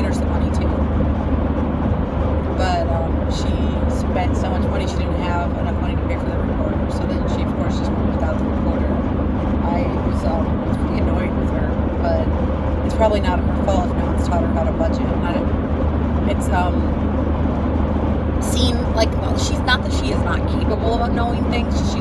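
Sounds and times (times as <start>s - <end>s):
car cabin road rumble: 0.0s - 22.0s.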